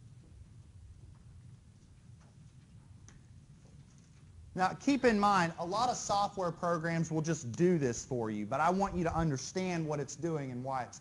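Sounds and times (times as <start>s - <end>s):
low hum: 0.0s - 9.8s.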